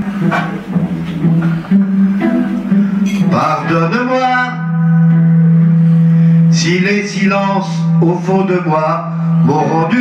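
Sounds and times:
man singing: 0:01.7 - 0:05.4, 0:06.4 - 0:10.0.

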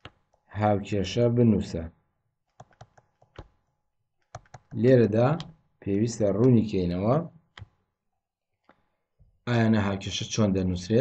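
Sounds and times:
stylus tapping on tablet: 0:02.5 - 0:04.8, 0:07.5 - 0:07.8.

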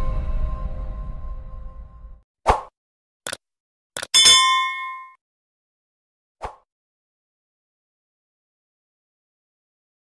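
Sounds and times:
sharp clicks: 0:04.0 - 0:04.2
bell-like ding: 0:04.2 - 0:05.2.

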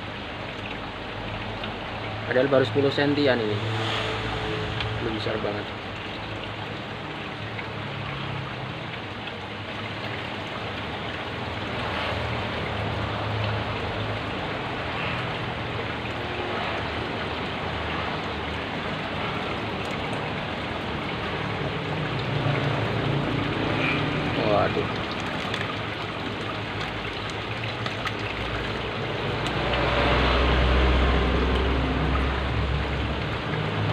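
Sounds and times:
aquarium water splashing and bubbling: 0:00.0 - 0:33.9
low hum: 0:03.4 - 0:06.8.

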